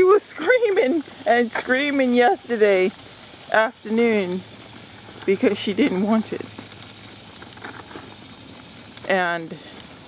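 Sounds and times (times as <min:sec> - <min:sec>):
outdoor background noise: 0:00.0 - 0:10.0
soft rustles: 0:04.1 - 0:10.0.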